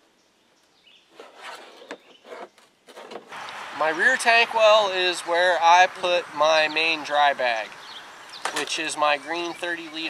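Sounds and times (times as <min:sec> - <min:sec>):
gear rustling in plastic kayak: 0:01.1 - 0:03.3.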